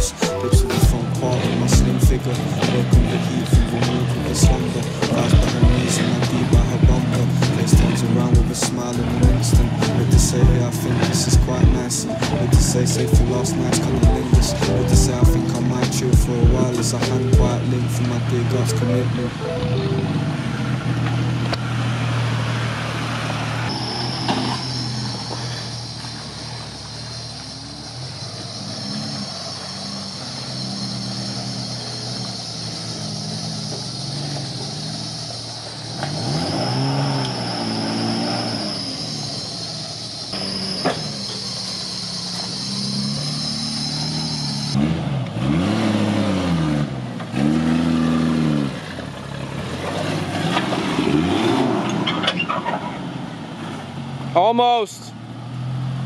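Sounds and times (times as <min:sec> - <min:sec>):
off-road truck engines revving: 0:00.0 - 0:56.0.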